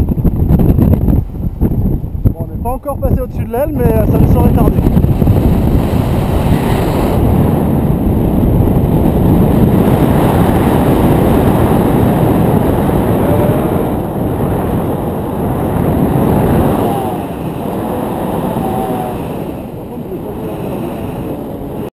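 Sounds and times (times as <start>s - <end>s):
wind buffeting microphone: 0.0s - 21.9s.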